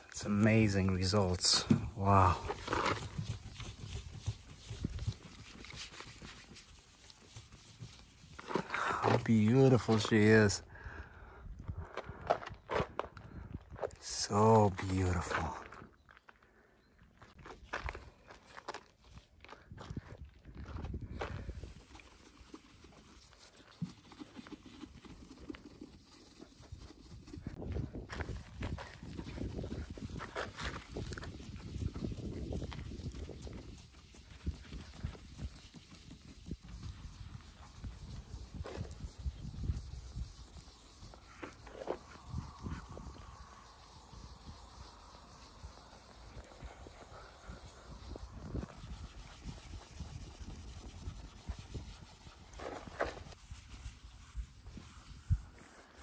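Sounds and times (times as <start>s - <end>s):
footsteps on gravel: 0.0s - 10.4s, 11.7s - 21.9s
cloth rubbing car paint: 0.9s - 10.3s, 21.4s - 56.0s.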